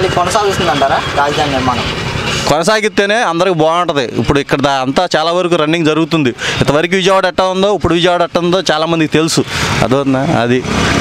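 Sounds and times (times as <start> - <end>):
man talking: 0.0 - 10.8
vehicle engine and road noise: 0.0 - 11.0.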